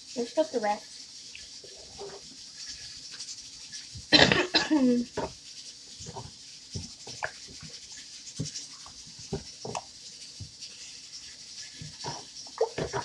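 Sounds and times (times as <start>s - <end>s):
spoon stirring and scraping pot: 0.1s - 13.0s.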